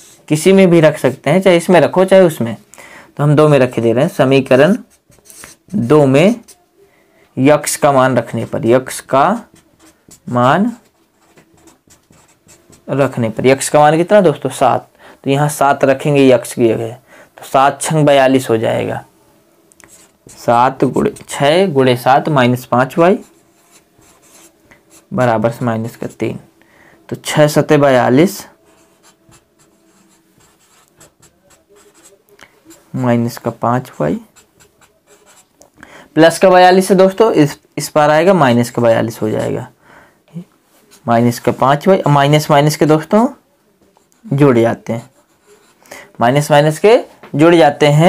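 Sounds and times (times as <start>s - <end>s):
marker pen scratching on whiteboard: 0.0s - 0.3s, 4.6s - 6.6s, 7.6s - 13.7s, 19.8s - 21.7s, 22.8s - 26.4s, 28.5s - 35.6s, 44.0s - 45.8s.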